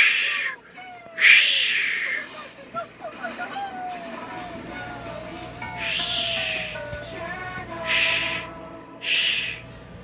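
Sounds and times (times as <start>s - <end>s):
soundtrack music with held tones: 4.2s - 10.0s
short hissing whooshes: 7.9s - 9.7s.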